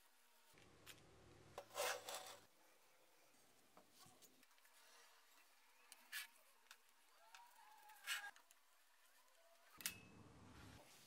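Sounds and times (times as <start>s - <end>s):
metal scraping on tabletop: 1.6s - 2.5s.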